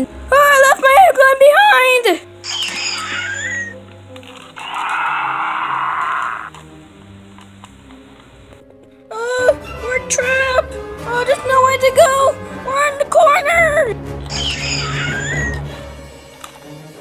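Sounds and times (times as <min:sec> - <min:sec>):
voices: 0:00.0 - 0:03.8, 0:09.2 - 0:15.5
soft background music: 0:00.0 - 0:17.0
rising and falling cry: 0:02.4 - 0:03.8, 0:04.6 - 0:06.6, 0:14.3 - 0:15.7
raspy creature roar: 0:04.6 - 0:06.5.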